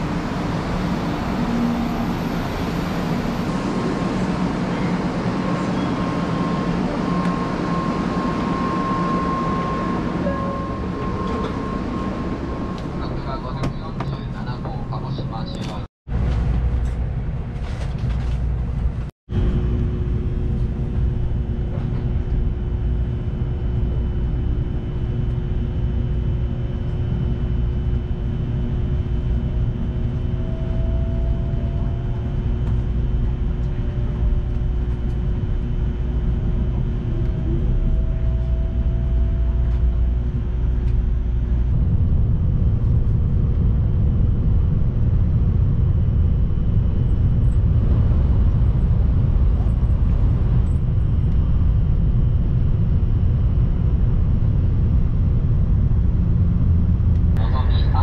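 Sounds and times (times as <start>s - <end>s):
faint rising whine: 0.0s - 15.6s
train cabin rumble: 0.0s - 23.5s, 53.8s - 58.0s.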